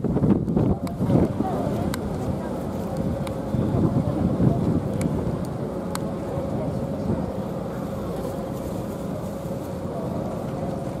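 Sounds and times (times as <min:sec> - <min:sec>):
murmuring voices: 0:00.6 - 0:11.0.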